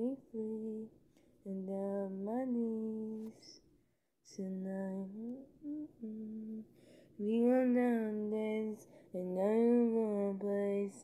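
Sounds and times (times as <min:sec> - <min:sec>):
woman humming a tune: 0:04.4 - 0:06.6.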